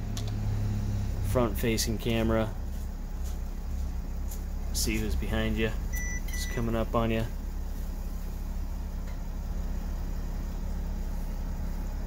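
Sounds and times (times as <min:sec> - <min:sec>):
van engine idling: 0:00.0 - 0:12.0.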